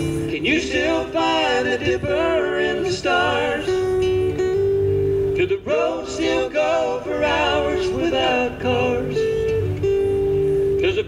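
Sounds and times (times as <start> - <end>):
acoustic guitars strumming: 0.0 - 11.0
person singing: 5.4 - 9.4.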